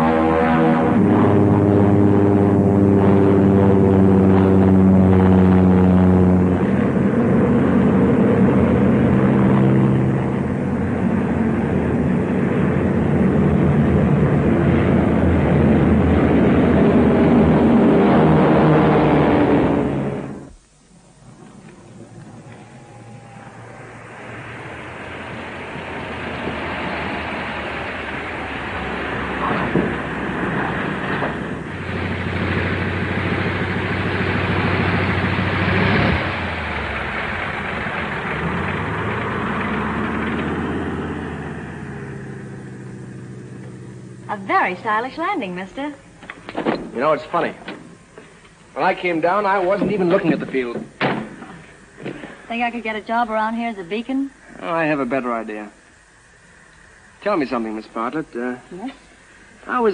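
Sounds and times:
propeller aircraft engines: 0.0s - 59.9s.

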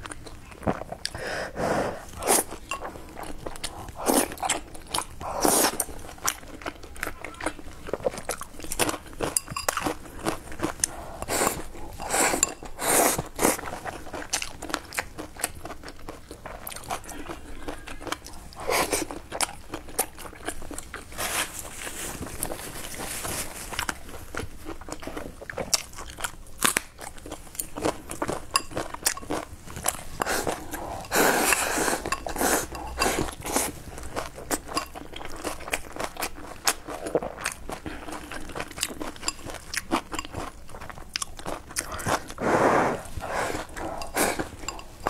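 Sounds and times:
person chewing food: 0.0s - 45.0s.

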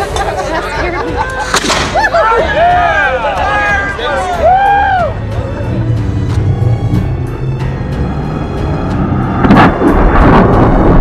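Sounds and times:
cannon blast: 9.4s - 11.0s.

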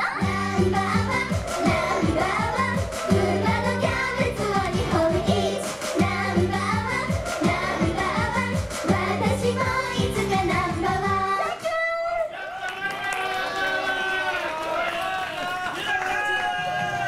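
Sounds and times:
pop backing track: 0.0s - 11.9s
girl singing into a microphone: 0.0s - 12.1s.

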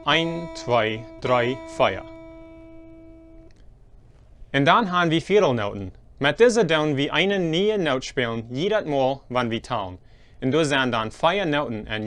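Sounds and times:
acoustic guitar note ringing: 0.0s - 3.6s.

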